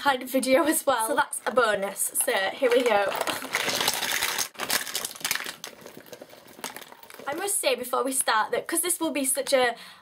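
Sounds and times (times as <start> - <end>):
makeup products clattering: 1.4 - 7.6
rustling: 2.1 - 7.7.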